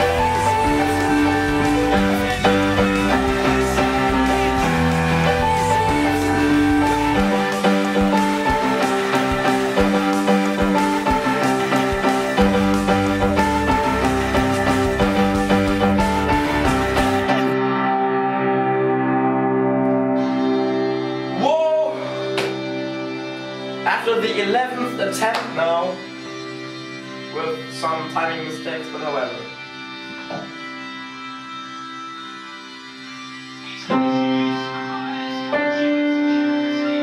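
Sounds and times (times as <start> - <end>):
piano chord ringing: 0.0 - 23.9.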